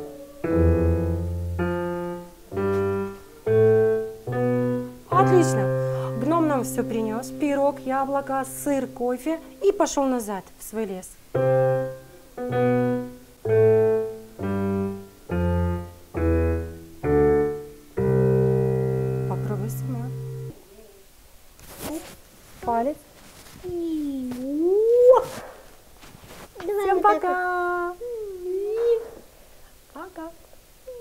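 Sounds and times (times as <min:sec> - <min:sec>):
digital piano chords: 0:00.0 - 0:10.3, 0:11.4 - 0:20.6.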